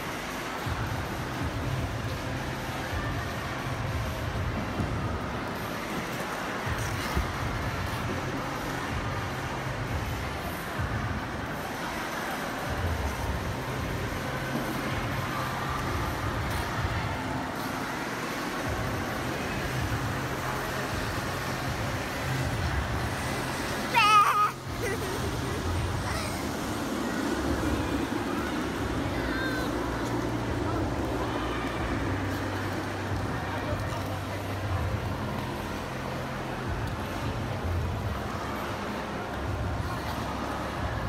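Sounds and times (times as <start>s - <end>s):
child screaming: 23.9s - 24.6s.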